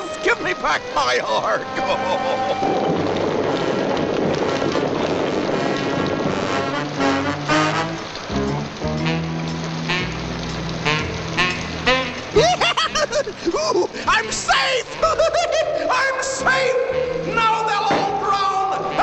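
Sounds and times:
animals stampeding in rain: 0:00.0 - 0:19.0
cartoon orchestral music: 0:00.0 - 0:19.0.

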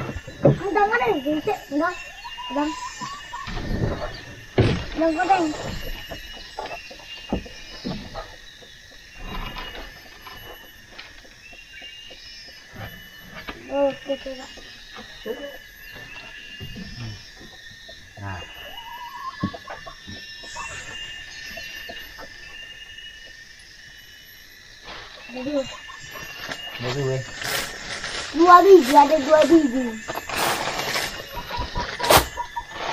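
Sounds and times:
forest insects droning: 0:00.0 - 0:32.9.

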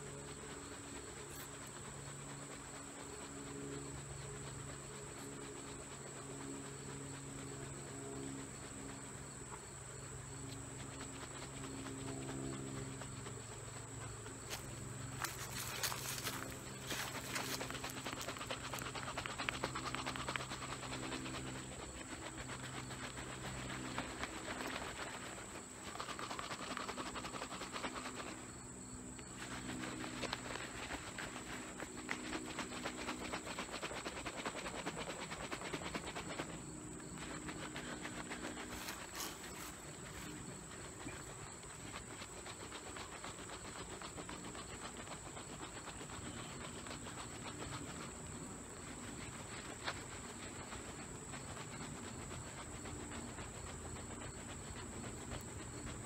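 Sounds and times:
jar rustling hiss: 0:13.6 - 0:20.8, 0:24.2 - 0:44.2.

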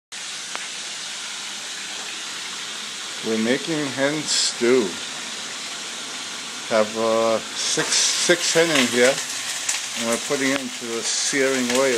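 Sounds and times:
steady hiss: 0:00.2 - 0:11.9.

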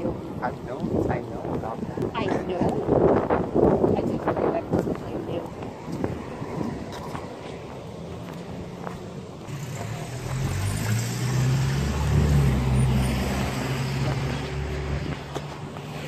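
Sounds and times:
vehicle engine passing by: 0:08.0 - 0:16.0.

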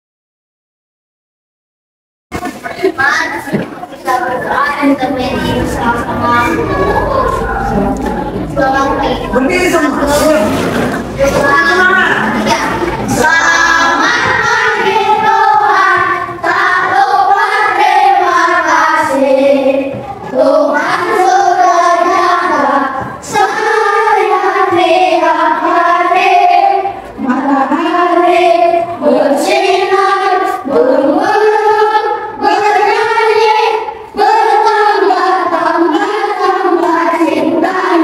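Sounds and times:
children singing together: 0:02.6 - 0:38.0.

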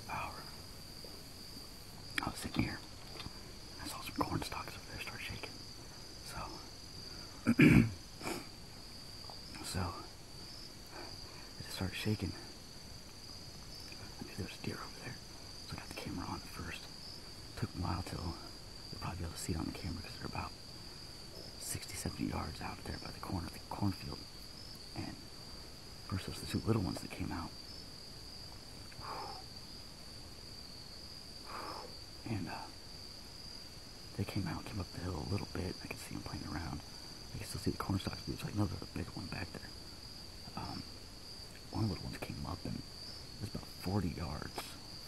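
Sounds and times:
crickets chirring: 0:00.0 - 0:45.0
throat-clearing cough: 0:07.5 - 0:08.5.

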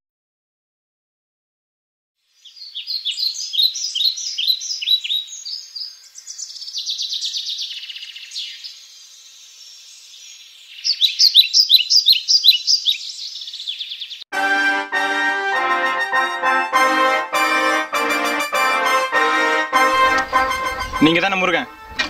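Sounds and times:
bird chirping: 0:02.3 - 0:14.3.

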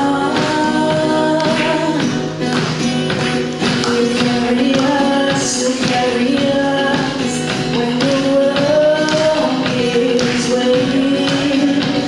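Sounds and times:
acoustic guitar: 0:00.0 - 0:12.0
woman singing into microphone: 0:00.0 - 0:12.0.

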